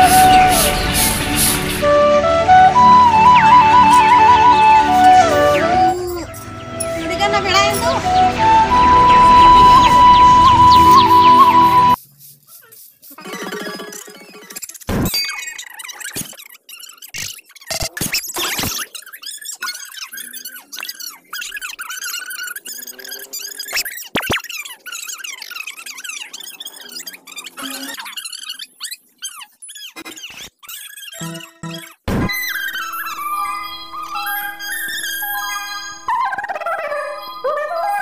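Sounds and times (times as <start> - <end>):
background music: 0.0 - 12.0
squeaky chirping sound effects: 0.0 - 38.0.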